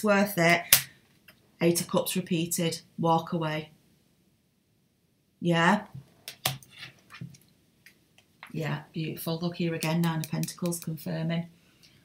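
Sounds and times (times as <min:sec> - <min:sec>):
cards clicking and tapping: 0:06.3 - 0:07.4, 0:09.8 - 0:11.0.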